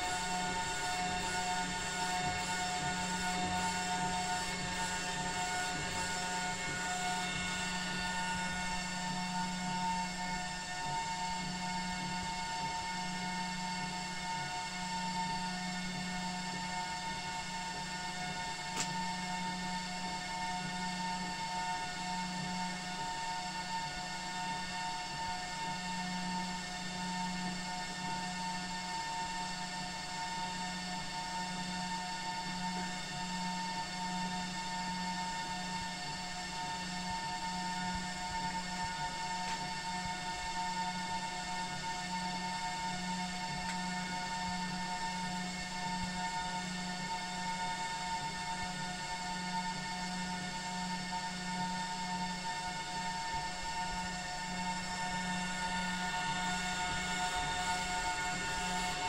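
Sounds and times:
printer fans and pump humming: 0.0s - 59.0s
steady whining tones: 0.0s - 59.0s.

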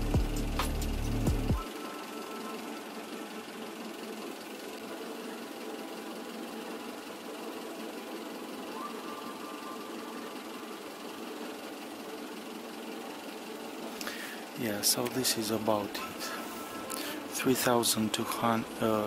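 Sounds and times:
engine idling: 0.0s - 19.0s
faint high whine: 1.6s - 19.0s.

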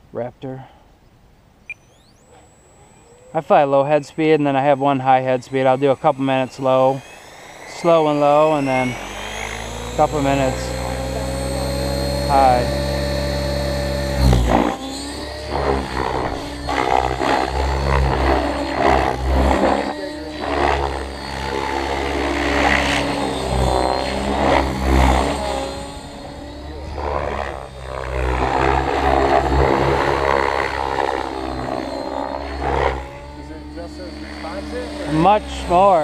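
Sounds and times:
rc helicopter rotor and motor: 1.7s - 36.0s.

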